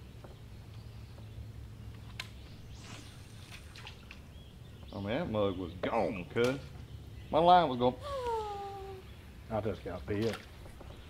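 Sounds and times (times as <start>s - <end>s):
soft water splash: 2.8s - 4.3s.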